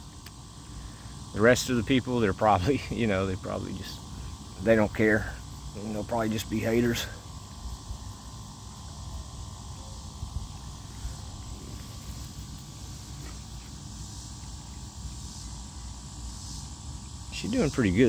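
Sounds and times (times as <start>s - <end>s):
faint insect drone: 0.0s - 18.0s.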